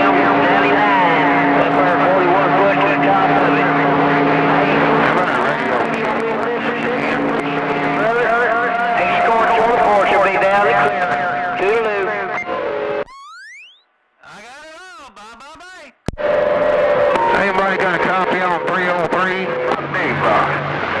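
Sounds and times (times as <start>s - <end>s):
rising whistle: 0.0s - 5.4s, 16.2s - 20.6s
garbled radio voices: 0.0s - 13.0s, 14.2s - 21.0s
steady radio whistle: 0.0s - 13.8s, 16.1s - 21.0s.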